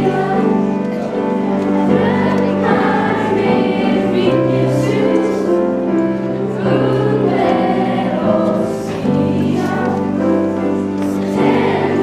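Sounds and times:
choir singing slowly: 0.0s - 12.0s.

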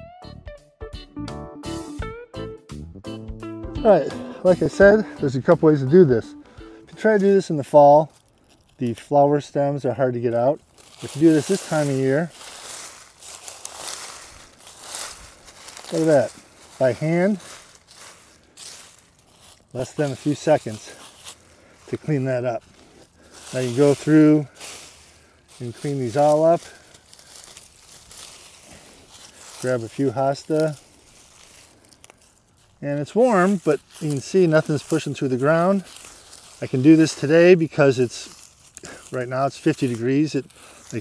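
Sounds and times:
dry stems rustling and crackling: 4.5s - 41.0s
stems snapping: 7.2s - 9.2s, 10.6s - 19.8s, 22.6s - 29.7s, 30.4s - 35.1s.

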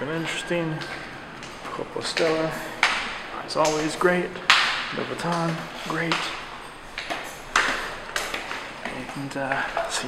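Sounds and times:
footsteps on tiled floor: 0.0s - 10.0s.

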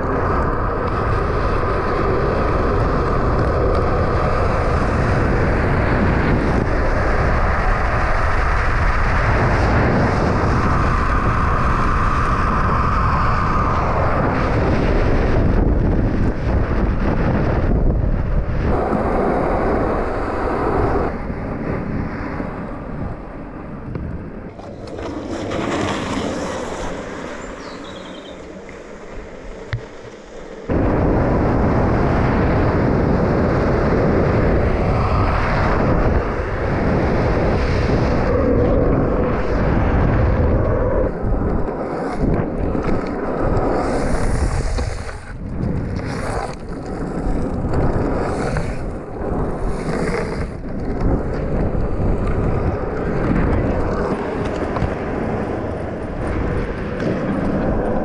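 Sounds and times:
longboard wheels rolling on asphalt: 0.0s - 58.0s
wind on microphone: 0.0s - 58.0s.

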